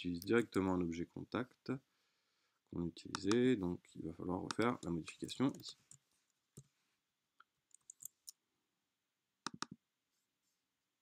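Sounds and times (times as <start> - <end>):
mouse clicks: 3.1 - 3.4, 4.5 - 4.9, 9.4 - 9.8.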